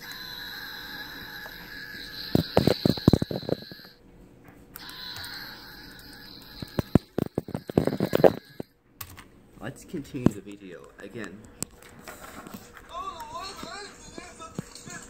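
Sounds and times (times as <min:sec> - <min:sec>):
toy electronic scream: 0:00.0 - 0:04.0, 0:04.8 - 0:08.7
toy handling knocks and clicks: 0:02.3 - 0:03.9, 0:06.0 - 0:09.3.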